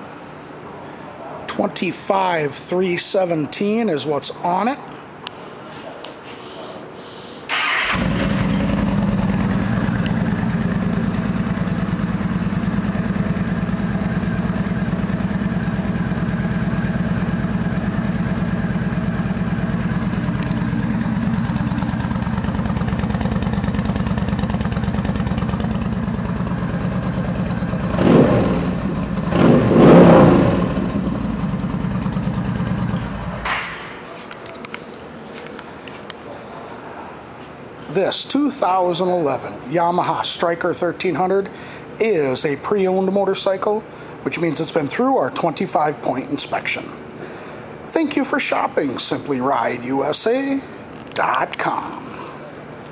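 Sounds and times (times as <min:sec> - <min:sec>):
motorcycle engine revving: 0:07.5 - 0:33.5
motorcycle engine idling: 0:07.6 - 0:33.5.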